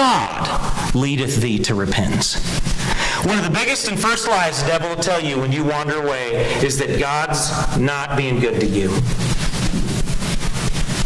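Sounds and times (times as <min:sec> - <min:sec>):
loud steady rushing noise: 0:08.6 - 0:11.0.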